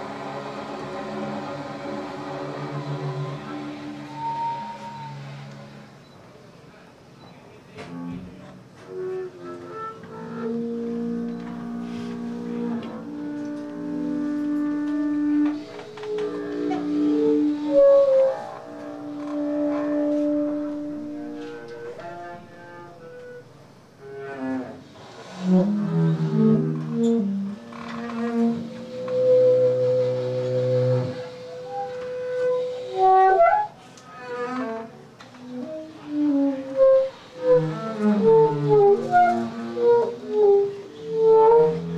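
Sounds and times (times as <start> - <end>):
bowed upright bass note: 7.8 - 23.5, 24.1 - 33.7.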